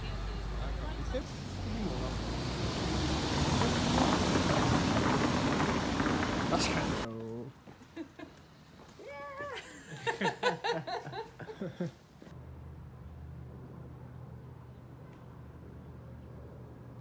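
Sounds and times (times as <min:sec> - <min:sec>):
passing vehicles rushing: 0:00.0 - 0:07.1.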